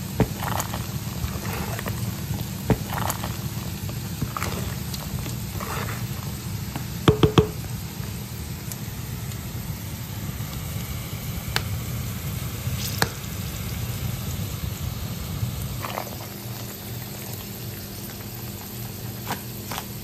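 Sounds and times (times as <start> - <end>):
onion sizzling in a frying pan: 0.0 - 20.0.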